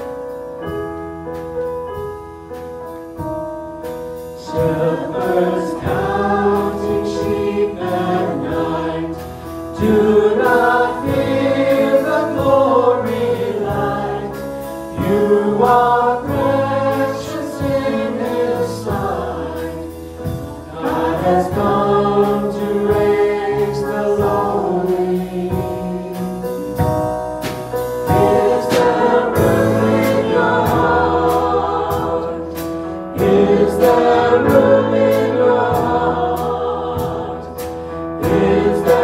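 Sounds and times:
keyboard accompaniment: 0:00.0 - 0:39.0
singers singing a hymn: 0:04.4 - 0:26.8, 0:28.0 - 0:39.0.

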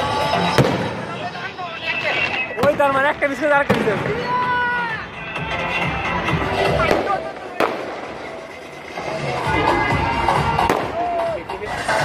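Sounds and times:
music: 0:00.0 - 0:12.0
voices: 0:00.0 - 0:12.0
fireworks banging: 0:00.4 - 0:04.5, 0:06.4 - 0:09.1, 0:10.6 - 0:11.0.

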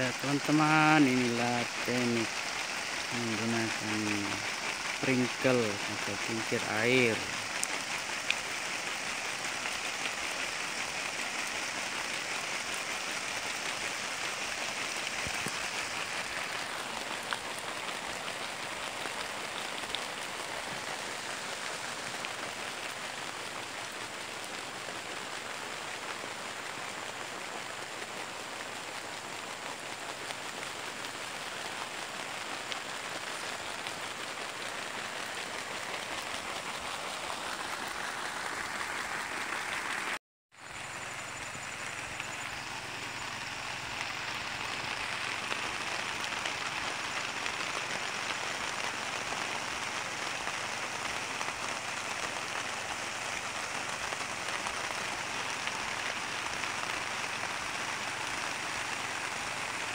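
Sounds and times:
sprinkler water spray hissing: 0:00.0 - 0:59.9.

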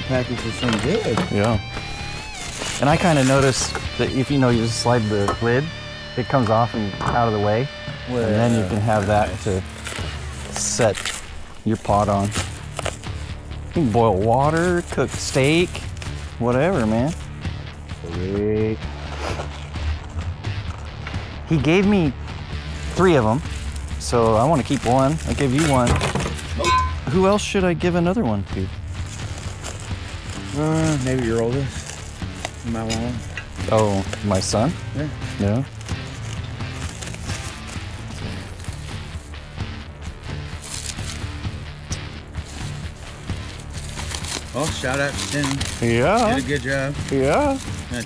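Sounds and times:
packing material rustling: 0:00.0 - 0:05.0, 0:08.1 - 0:17.4, 0:18.9 - 0:21.0, 0:22.6 - 0:27.1, 0:28.6 - 0:48.0
background music with low notes: 0:00.0 - 0:48.0.

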